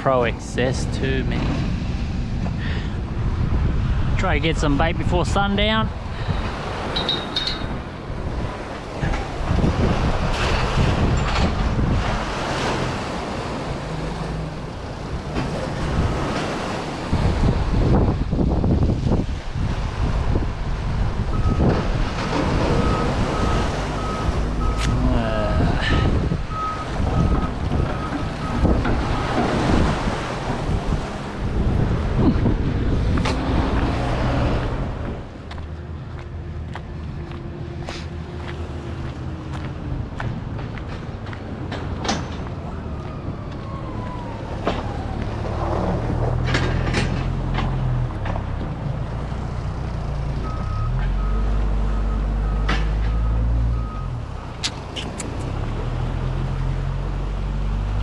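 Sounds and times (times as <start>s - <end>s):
wind noise on microphone: 0.7s - 13.1s, 15.4s - 36.2s.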